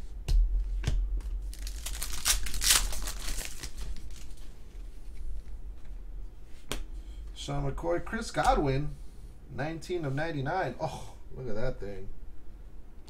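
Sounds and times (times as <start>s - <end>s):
foil wrapper tearing and crinkling: 1.2s - 4.4s.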